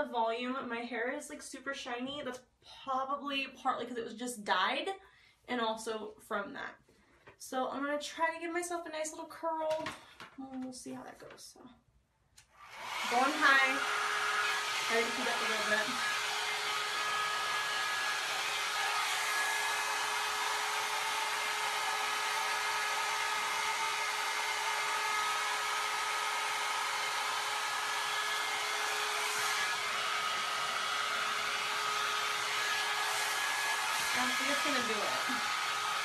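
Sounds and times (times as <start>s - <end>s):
hot air brush running: 12.6s - 36.0s.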